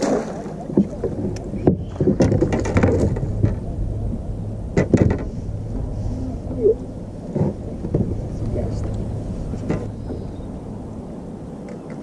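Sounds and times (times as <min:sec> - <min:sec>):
knocks and clatter in boat: 0:00.0 - 0:12.0
steady low hum: 0:00.0 - 0:12.0.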